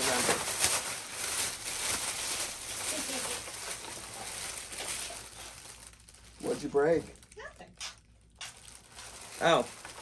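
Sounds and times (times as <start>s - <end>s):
plastic bag rustling: 0.0s - 7.7s, 8.4s - 10.0s.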